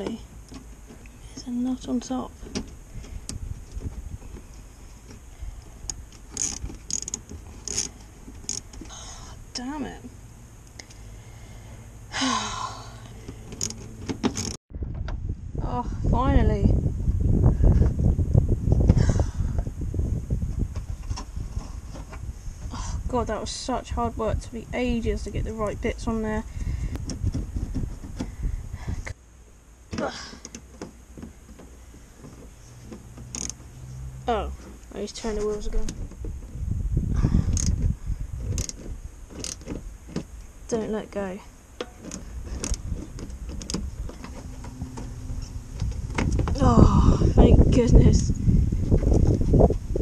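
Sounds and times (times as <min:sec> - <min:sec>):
wind rumble on microphone: 0:00.0 - 0:10.3, 0:10.9 - 0:29.2, 0:31.2 - 0:50.0
clinks of tools and fasteners: 0:05.9 - 0:08.9, 0:13.3 - 0:14.6, 0:33.2 - 0:33.6
person groaning with effort: 0:12.1 - 0:13.1, 0:46.5 - 0:47.4.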